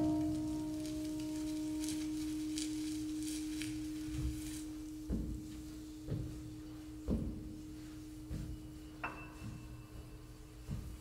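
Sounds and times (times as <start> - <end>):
soft brushing or scraping: 0.0 - 11.0
sustained pure tone: 0.0 - 11.0.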